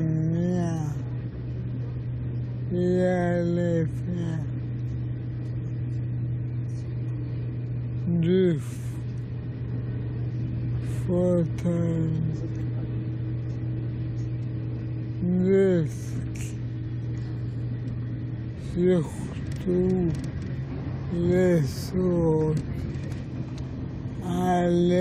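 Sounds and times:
train hum inside carriage: 0.0 - 25.0
man speaking: 18.7 - 20.2, 21.1 - 22.6, 24.2 - 25.0.

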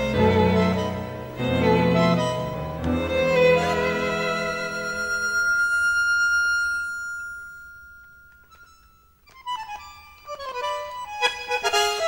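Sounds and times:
tango orchestra music: 0.0 - 7.0.

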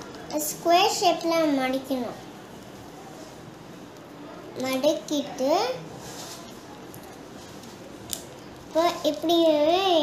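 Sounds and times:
child speaking: 0.3 - 2.2, 4.6 - 5.8, 8.7 - 10.0.

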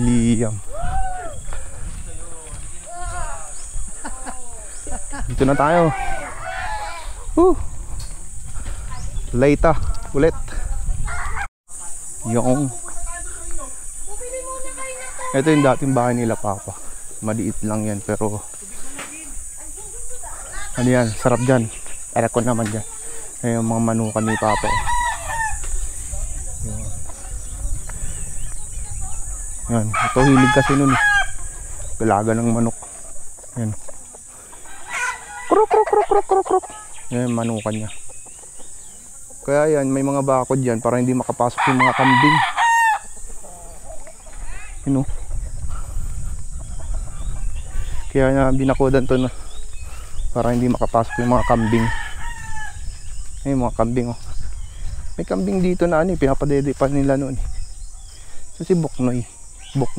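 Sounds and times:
high insect buzz: 0.0 - 59.9
roosters clucking: 0.0 - 59.9
rooster crowing: 5.0 - 7.6, 24.0 - 26.0, 29.3 - 32.0, 34.5 - 37.0, 41.5 - 44.8, 50.8 - 53.3.

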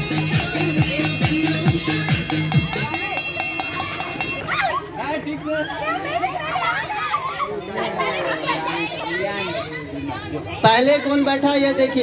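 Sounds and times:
girls chattering and calling out: 0.0 - 12.0.

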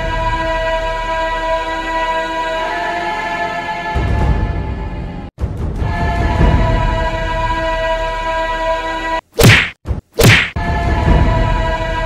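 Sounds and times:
background music: 0.0 - 9.6, 10.2 - 12.0
whooshing punch sound effects: 9.4 - 10.6.

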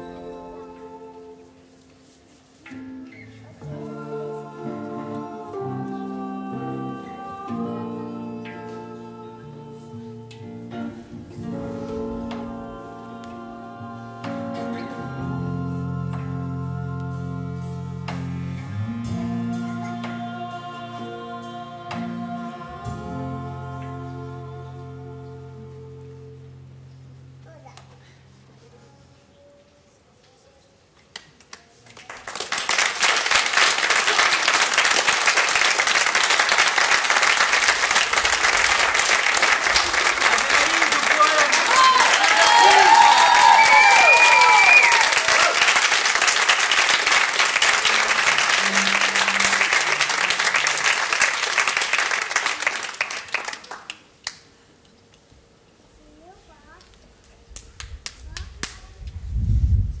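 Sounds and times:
audience applauding: 31.2 - 54.4
whoops and cheers: 40.8 - 45.8.

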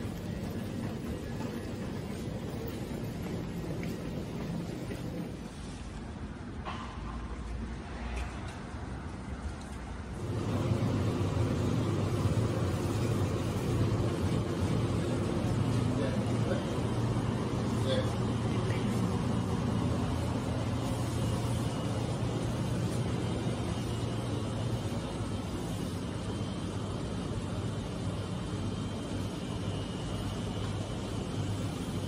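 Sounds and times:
steady low hum: 0.0 - 7.8, 9.9 - 32.0.

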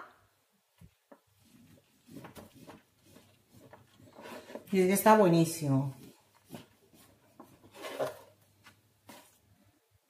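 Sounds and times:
knife cutting sponge cake: 1.4 - 4.7.

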